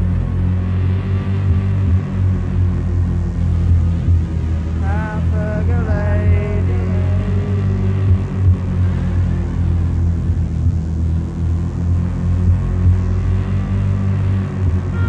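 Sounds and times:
industrial electronic drone: 0:00.0 - 0:15.0.

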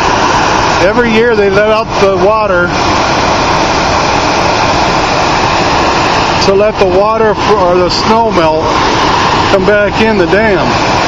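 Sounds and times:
water jetting from dam outlets: 0:00.0 - 0:11.0.

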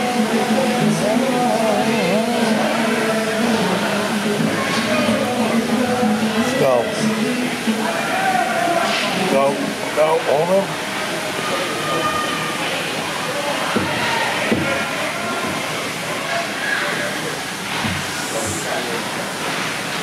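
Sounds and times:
spectators talking and calling out: 0:00.0 - 0:19.8.

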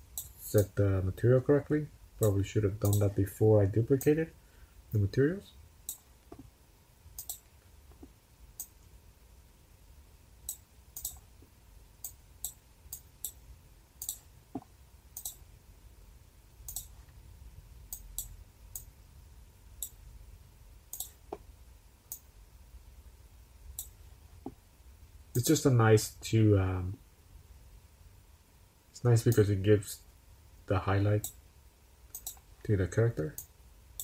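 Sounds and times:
low steady hum: 0:00.0 - 0:34.0
computer mouse clicking: 0:02.2 - 0:03.1, 0:07.2 - 0:08.8, 0:10.5 - 0:11.3, 0:12.0 - 0:13.4, 0:14.0 - 0:14.3, 0:15.2 - 0:15.4, 0:16.7 - 0:17.0, 0:20.9 - 0:21.4, 0:32.1 - 0:32.5.

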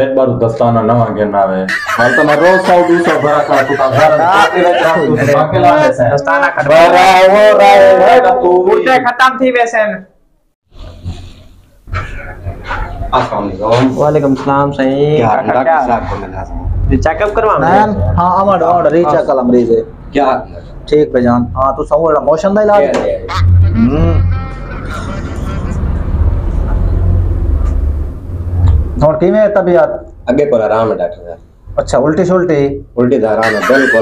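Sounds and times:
steady low rumble: 0:23.2 - 0:29.3.

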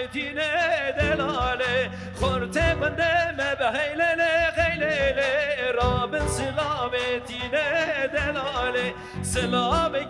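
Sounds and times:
man singing with vibrato: 0:00.0 - 0:10.0
frame drum: 0:04.4 - 0:07.6
bowed string instrument: 0:04.6 - 0:10.0.

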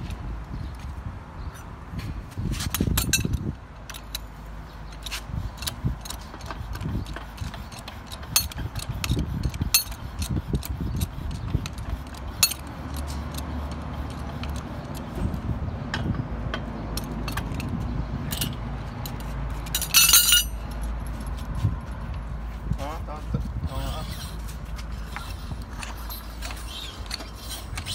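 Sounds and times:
pipe wrenches clicking on metal tube: 0:02.7 - 0:15.2
metallic clatter: 0:04.9 - 0:21.4.

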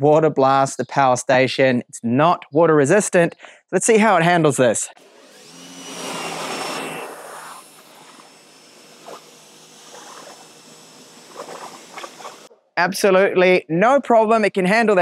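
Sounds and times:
pressure washer spraying: 0:05.0 - 0:12.5.

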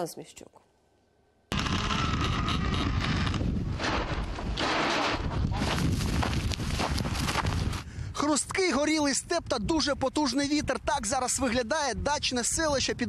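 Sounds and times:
wind buffeting microphone: 0:01.5 - 0:13.0
boots crunching on dry grass: 0:05.5 - 0:07.8.

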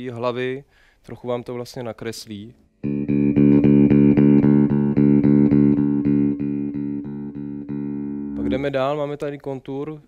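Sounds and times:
electric bass note picked: 0:02.8 - 0:08.8.

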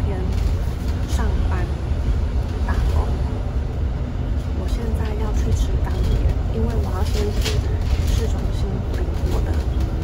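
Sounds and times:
woman talking: 0:00.0 - 0:01.8, 0:02.6 - 0:03.4, 0:04.5 - 0:10.0
bus engine and road noise: 0:00.0 - 0:10.0.

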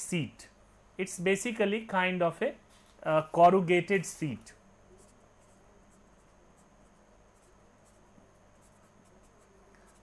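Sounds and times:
low electrical hum: 0:00.0 - 0:10.0
pen scratching on paper: 0:04.9 - 0:10.0.

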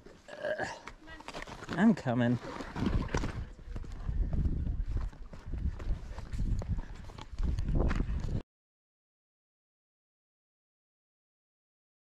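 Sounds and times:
footsteps on gravel: 0:01.2 - 0:08.4
wind rumbling on microphone: 0:02.6 - 0:08.4.

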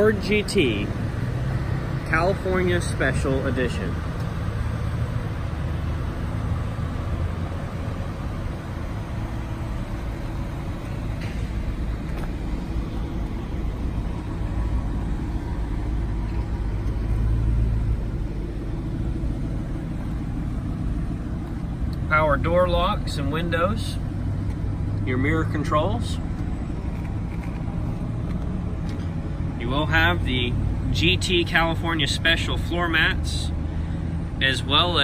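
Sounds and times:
car engine idling: 0:00.0 - 0:35.0.

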